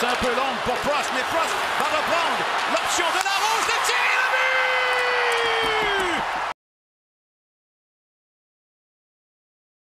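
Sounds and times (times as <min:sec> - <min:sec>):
excited sports commentary: 0:00.0 - 0:06.3
crowd noise: 0:00.0 - 0:06.6
commentator long held shout: 0:01.8 - 0:06.3.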